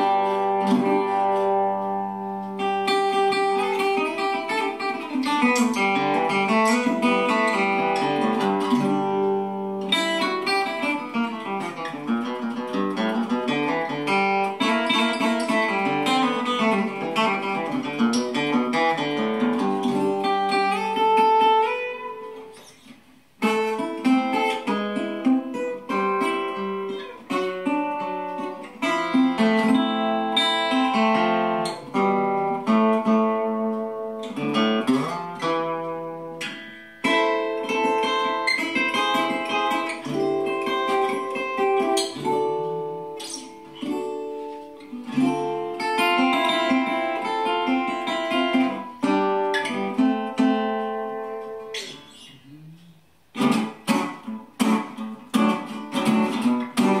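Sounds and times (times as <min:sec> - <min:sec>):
resonator guitar picking: 0:00.0 - 0:57.0.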